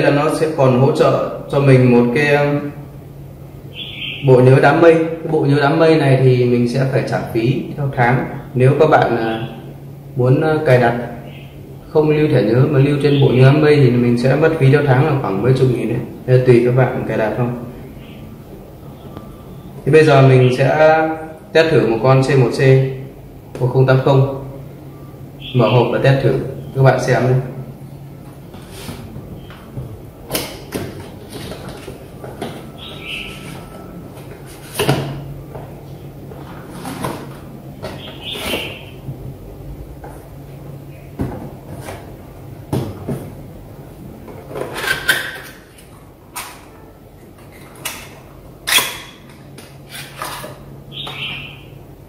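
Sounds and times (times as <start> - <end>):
steady low hum: 0.0 - 52.0.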